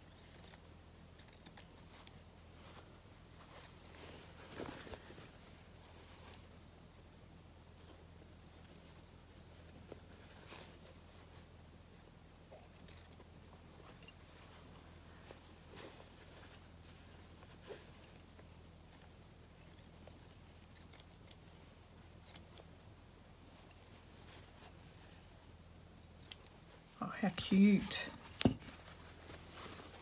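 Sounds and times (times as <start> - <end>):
faint low hum: 0.0 - 30.0.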